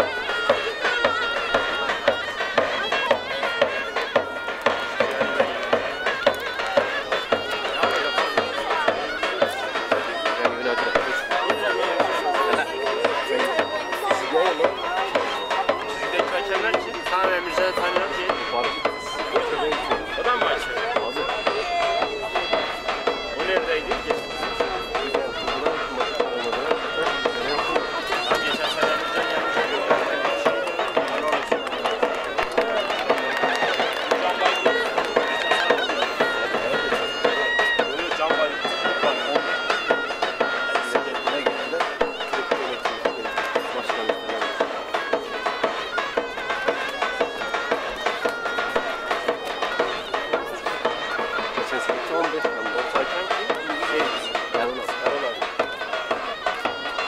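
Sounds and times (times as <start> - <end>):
drum beats: 0.0 - 57.0
shrill reed melody: 0.0 - 57.0.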